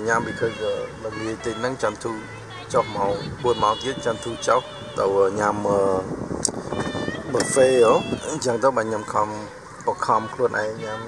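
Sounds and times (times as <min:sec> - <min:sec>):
people talking: 0:00.0 - 0:06.1, 0:06.8 - 0:11.0
high drawn-out vocal sound: 0:00.0 - 0:11.0.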